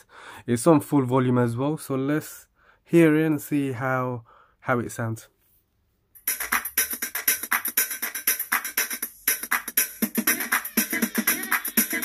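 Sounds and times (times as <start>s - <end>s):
instrumental track with fast beat: 6.2s - 12.0s.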